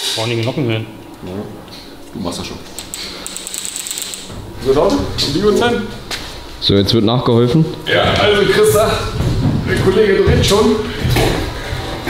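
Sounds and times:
rapid mechanical clicking: 0:02.7 - 0:05.7
man's voice: 0:04.6 - 0:11.6.

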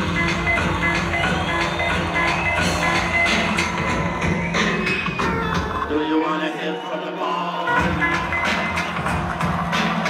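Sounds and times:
hip-hop beat through loudspeakers: 0:00.0 - 0:10.0.

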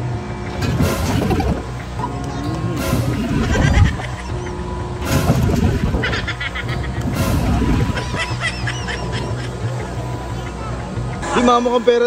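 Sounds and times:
ride machinery hum: 0:00.0 - 0:12.0.

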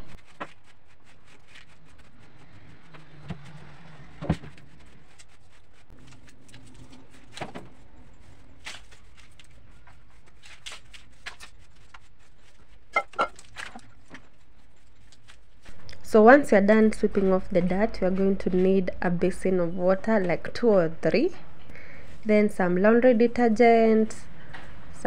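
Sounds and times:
hand brush sweeping floor: 0:00.0 - 0:15.8.

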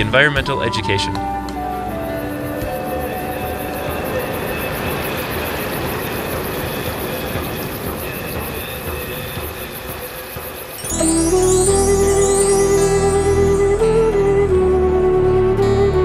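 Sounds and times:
soft background music: 0:00.0 - 0:16.0
steady rushing noise: 0:02.2 - 0:10.8.

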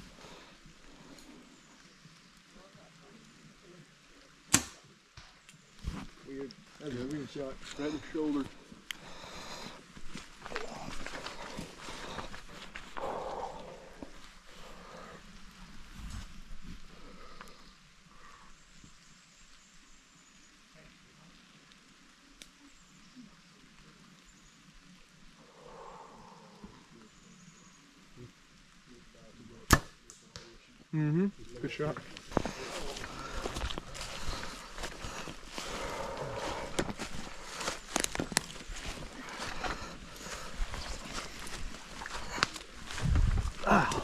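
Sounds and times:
bow string snap: 0:04.5 - 0:05.3, 0:29.7 - 0:30.6
rustling in leaf litter: 0:05.6 - 0:17.8, 0:31.4 - 0:44.0.

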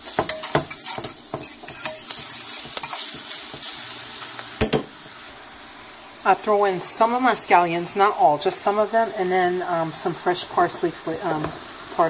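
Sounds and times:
utensil scraping a pan: 0:00.0 - 0:03.9
food sizzling in a frying pan: 0:00.0 - 0:12.0.

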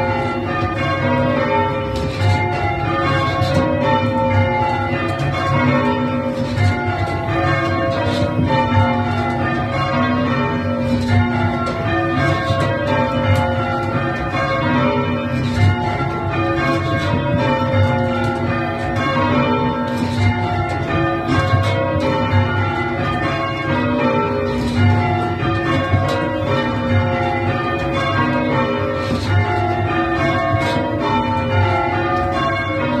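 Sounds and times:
church bells change ringing: 0:00.0 - 0:33.0.

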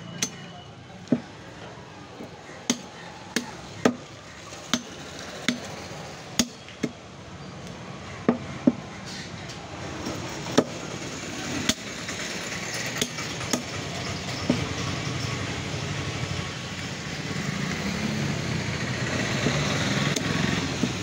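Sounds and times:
steady engine: 0:00.0 - 0:21.0
meat cleaver chopping bones: 0:02.6 - 0:04.1.

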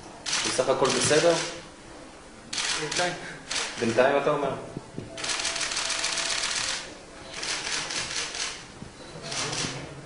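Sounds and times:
camera shutters clicking: 0:00.2 - 0:01.6, 0:02.5 - 0:03.8, 0:05.2 - 0:06.8, 0:07.4 - 0:08.6, 0:09.3 - 0:09.8.

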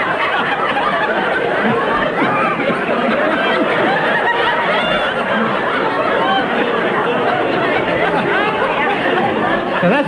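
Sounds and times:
indistinct chatter of many voices: 0:00.0 - 0:10.0.

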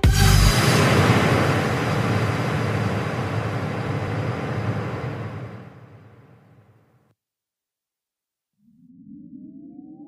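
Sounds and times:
low rumble: 0:00.0 - 0:06.6
wash of noise: 0:00.4 - 0:06.6.

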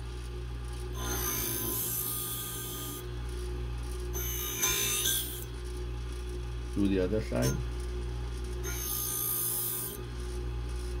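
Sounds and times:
steady motor hum: 0:00.0 - 0:11.0
high hissing blade grinding: 0:01.0 - 0:03.1, 0:04.1 - 0:05.5, 0:07.2 - 0:07.7, 0:08.6 - 0:10.0.

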